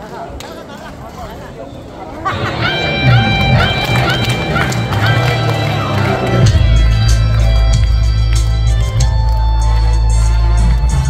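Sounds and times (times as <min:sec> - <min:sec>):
instrumental backing track over loudspeakers: 0:02.3 - 0:11.0.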